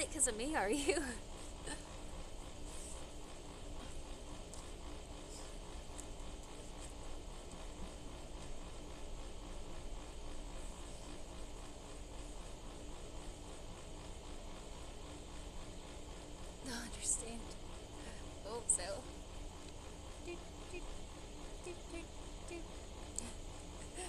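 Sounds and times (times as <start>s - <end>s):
faint continuous hum: 0.0s - 24.0s.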